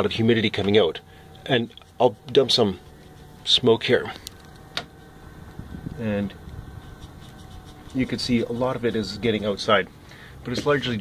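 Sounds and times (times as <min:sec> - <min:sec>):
bathroom exhaust fan humming: 0:00.0 - 0:11.0.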